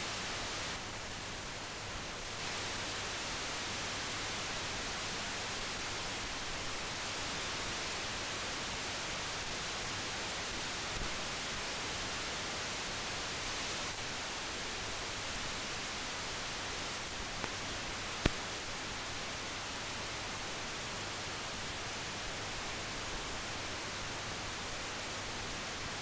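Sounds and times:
steady hiss: 0.0s - 26.0s.

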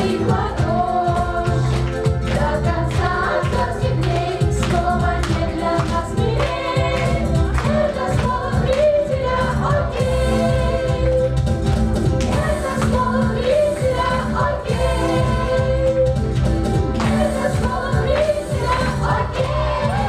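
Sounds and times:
women and girls singing: 0.0s - 11.4s, 12.3s - 16.2s, 17.0s - 20.0s
music with steady beat: 0.0s - 20.0s.

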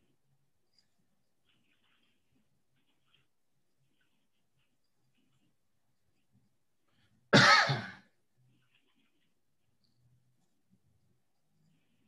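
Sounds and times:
person coughing: 7.3s - 8.1s.

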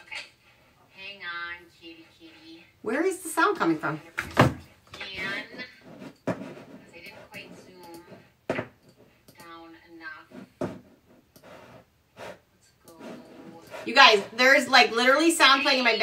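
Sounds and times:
room sound: 0.0s - 16.0s
speech from recorded video: 12.8s - 16.0s.

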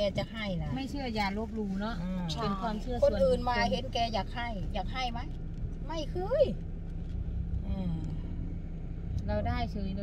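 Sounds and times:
woman speaking: 0.0s - 5.3s
car interior rumble: 0.0s - 10.0s.

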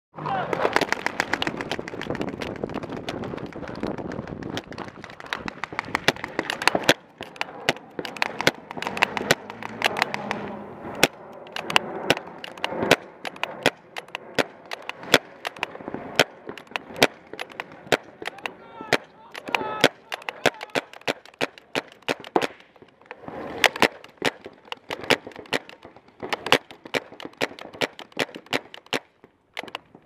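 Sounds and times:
paintball markers firing: 0.5s - 30.0s.

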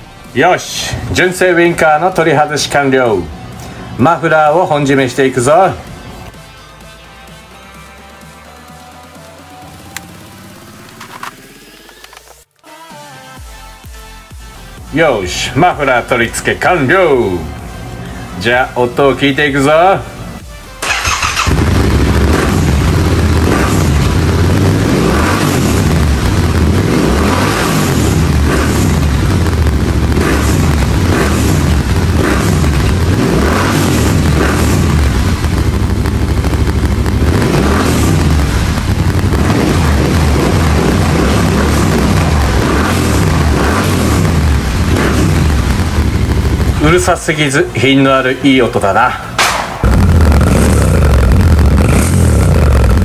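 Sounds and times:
motorcycle engine revving: 5.8s - 12.5s, 20.8s - 48.1s, 49.5s - 53.0s.

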